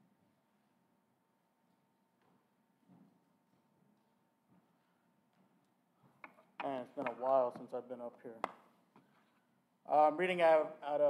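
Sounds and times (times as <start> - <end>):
man speaking: 6.6 - 8.5, 9.9 - 11.0.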